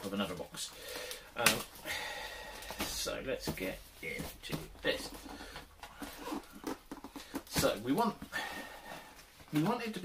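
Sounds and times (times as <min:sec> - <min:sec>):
hands handling cardboard box: 0:02.5 - 0:10.0.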